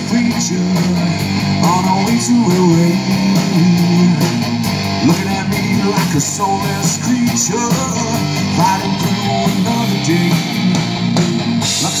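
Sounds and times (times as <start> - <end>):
person singing: 0.0 - 10.8, 11.6 - 12.0
bass guitar: 0.0 - 12.0
drums: 0.0 - 12.0
electric guitar: 0.0 - 12.0.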